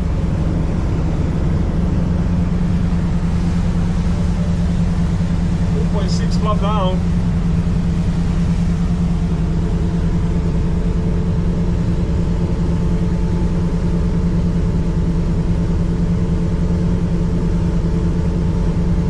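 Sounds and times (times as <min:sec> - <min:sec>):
boat diesel engines droning: 0:00.0 - 0:19.0.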